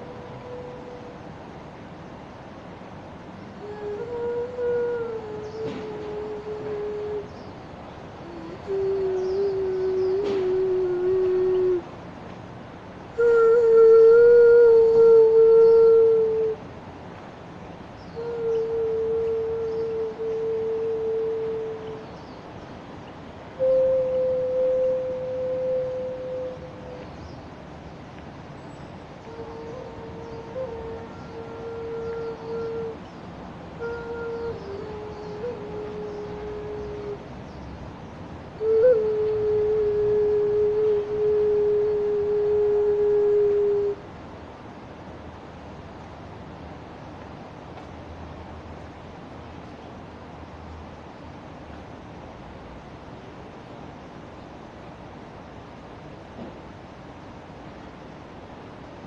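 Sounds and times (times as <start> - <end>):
clay vessel flute melody: 23.6 - 27.1, 29.2 - 33.0, 33.8 - 37.2, 38.6 - 44.0.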